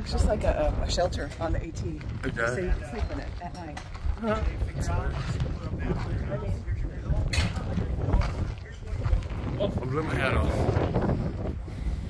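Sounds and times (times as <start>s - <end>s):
people talking: 0.0s - 10.9s
wind rumble on microphone: 0.0s - 12.0s.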